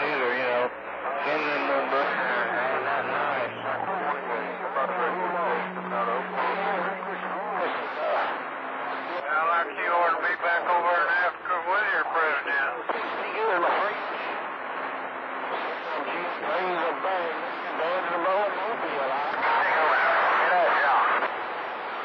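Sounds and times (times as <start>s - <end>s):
men's voices over radio: 0.0s - 14.4s, 15.5s - 21.3s
radio band noise: 0.0s - 22.0s
low steady tone: 0.7s - 9.1s.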